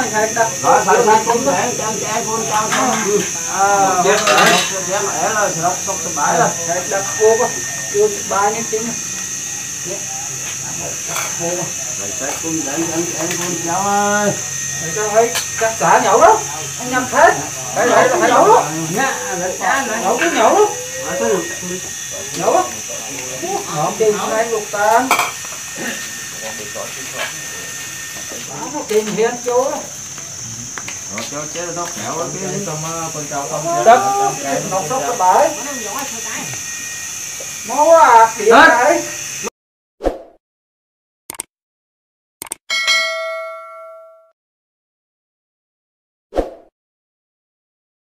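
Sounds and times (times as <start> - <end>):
notification bell ding: 42.7 - 44.4.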